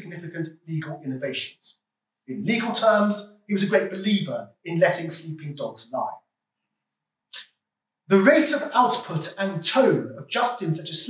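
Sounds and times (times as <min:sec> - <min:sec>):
man speaking: 0:00.0 - 0:01.7, 0:02.3 - 0:06.1, 0:08.1 - 0:11.0.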